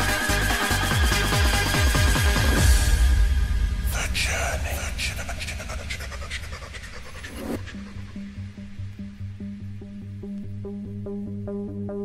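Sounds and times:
dance music: 0.0 - 3.0, 3.9 - 8.1.

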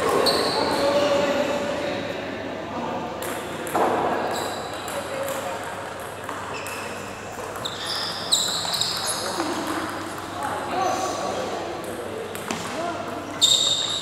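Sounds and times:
short high squeaks: 7.6 - 9.3, 13.4 - 14.0.

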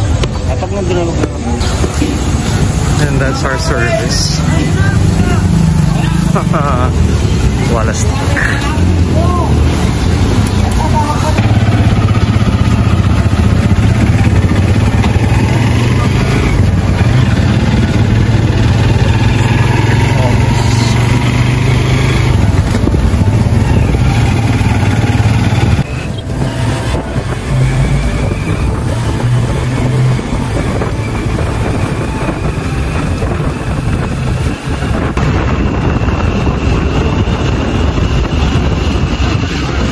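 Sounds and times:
motorcycle engine running: 0.0 - 39.9
road and wind noise: 0.0 - 39.9.

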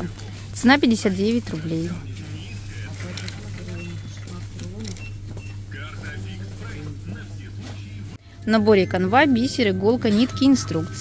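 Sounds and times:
faint voices: 1.0 - 5.0, 5.6 - 8.2
background music: 7.2 - 11.0.

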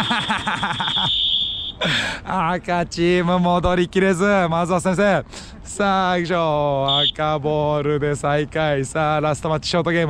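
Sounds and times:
burst of laughter: 0.0 - 1.2
long whistle blast: 0.0 - 1.9, 6.9 - 7.2.

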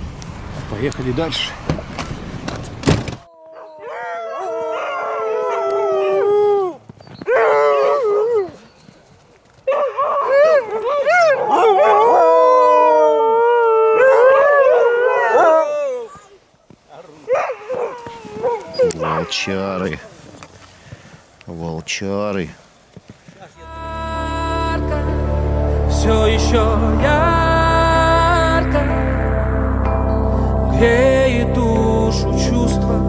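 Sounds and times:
huskies howling together: 3.4 - 8.6, 9.7 - 16.2, 17.3 - 19.8.

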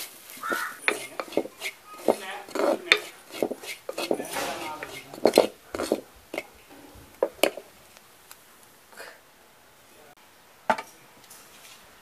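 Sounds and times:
spoon scraping clay pot: 0.0 - 7.6
sharp knock: 4.3 - 5.3.

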